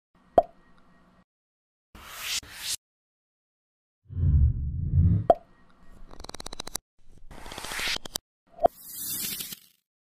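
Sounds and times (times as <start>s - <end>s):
rising whoosh: 4.1s - 5.3s.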